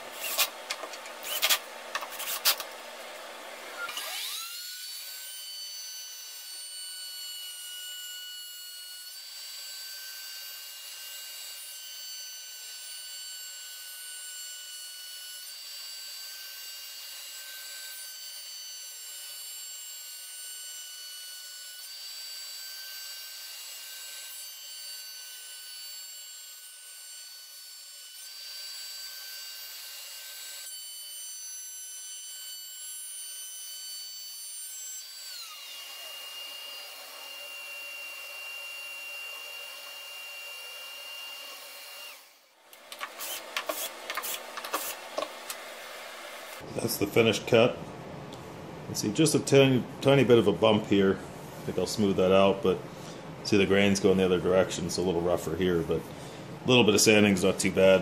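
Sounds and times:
router cutting wood whine: 0:00.0 - 0:46.8
router winding down: 0:03.3 - 0:05.2, 0:35.0 - 0:46.7.

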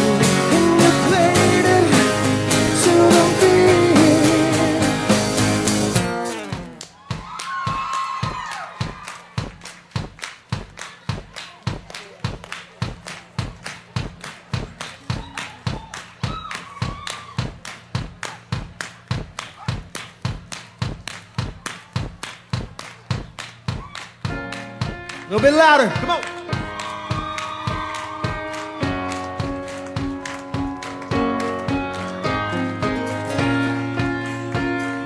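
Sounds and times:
kick drum beat: 0:06.5 - 0:34.7
hand claps: 0:06.6 - 0:32.3.

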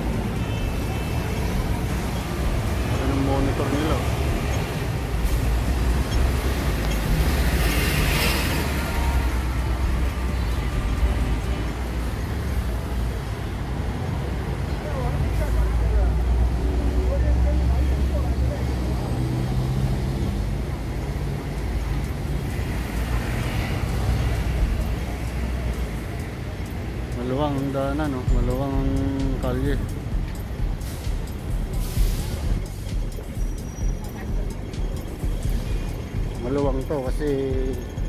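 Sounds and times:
bus and car engines rumbling: 0:00.0 - 0:38.0.

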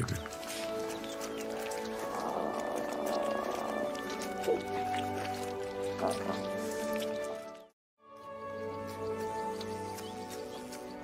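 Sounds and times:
lion cubs suckling: 0:00.0 - 0:07.6
documentary score music: 0:00.0 - 0:11.0.

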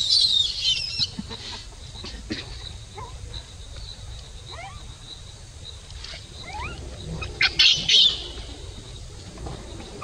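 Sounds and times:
birds chirping: 0:00.0 - 0:10.0
high-pitched bird calls: 0:06.0 - 0:09.1.

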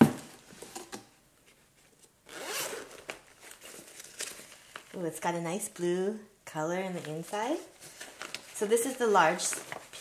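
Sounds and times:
zipper pulled open: 0:02.3 - 0:03.0.

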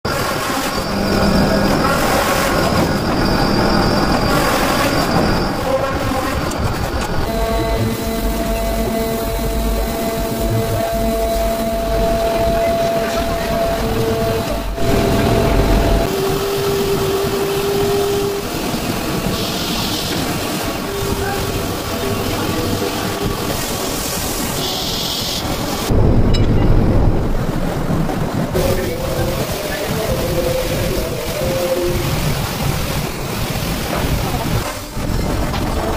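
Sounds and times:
machines droning: 0:00.5 - 0:05.8, 0:06.4 - 0:24.2.

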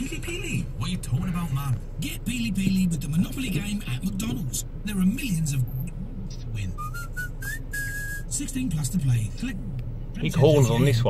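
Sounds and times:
low steady hum: 0:00.0 - 0:11.0
whistled phrase: 0:06.8 - 0:08.3.

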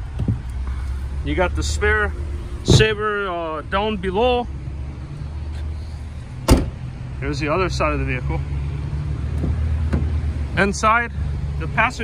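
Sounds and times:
car liftgate slammed shut: 0:06.4 - 0:06.8.

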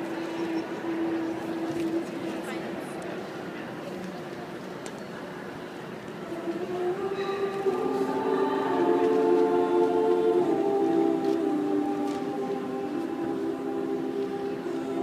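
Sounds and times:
women singing in close harmony: 0:06.2 - 0:15.0.

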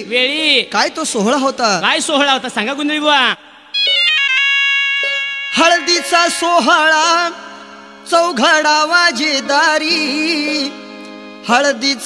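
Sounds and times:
electronic keyboard notes: 0:03.8 - 0:12.0
man singing: 0:05.5 - 0:12.0.

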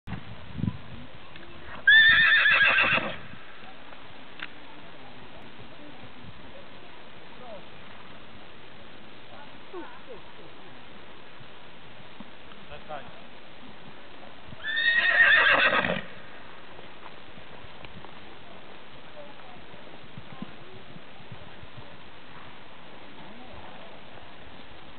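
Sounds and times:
horse whinnying: 0:01.8 - 0:03.2, 0:14.6 - 0:16.2.

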